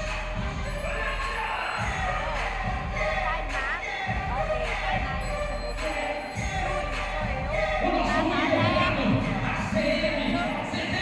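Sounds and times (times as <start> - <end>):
music with vocal melody and beat: 0.0 - 11.0.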